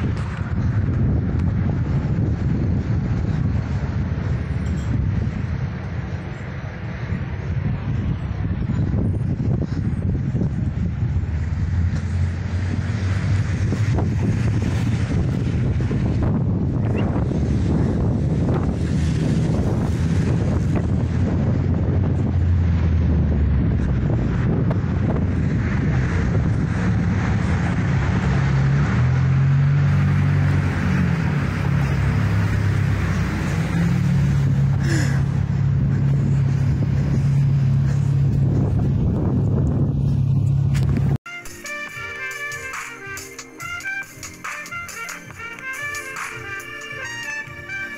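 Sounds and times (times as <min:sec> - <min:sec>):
wind on microphone: 0:00.0 - 0:41.2
traffic passing: 0:00.0 - 0:47.9
tyres on road: 0:00.0 - 0:47.9
music: 0:41.3 - 0:47.9.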